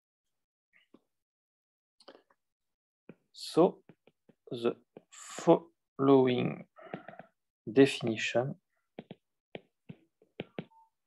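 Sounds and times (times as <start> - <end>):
stylus tapping on glass screen: 6.9 - 7.4, 9.0 - 10.9.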